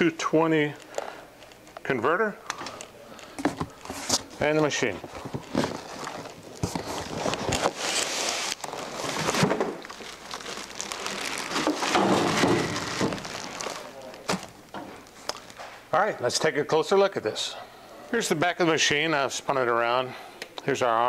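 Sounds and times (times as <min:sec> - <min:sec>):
plastic bag crinkling: 0:02.6 - 0:15.7.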